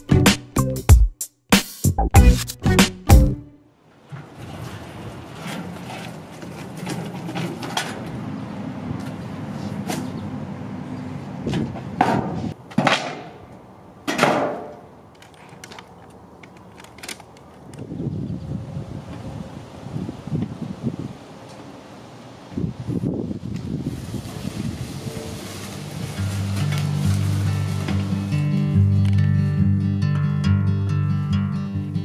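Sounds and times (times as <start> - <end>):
wheelbarrow wheel rumbling: 3.8 - 10.2, 23.4 - 29.2.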